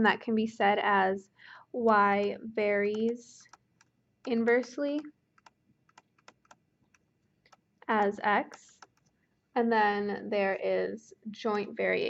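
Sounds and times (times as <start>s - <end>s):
stylus tapping on tablet: 2.8s - 9.2s.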